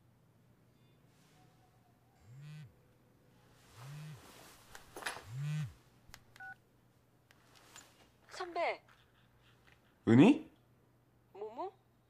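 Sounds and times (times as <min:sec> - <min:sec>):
mobile phone vibrating: 0:02.2 - 0:02.8, 0:03.8 - 0:04.3, 0:05.2 - 0:05.8.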